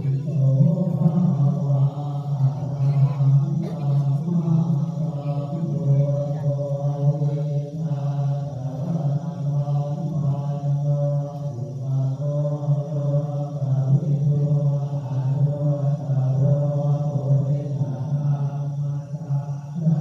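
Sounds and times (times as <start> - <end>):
monotone chanting: 0.0 - 20.0.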